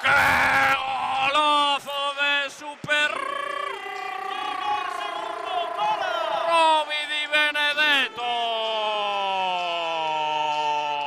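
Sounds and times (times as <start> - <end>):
commentator's drawn-out cry: 3.0 - 9.0
voices gliding: 3.1 - 7.6.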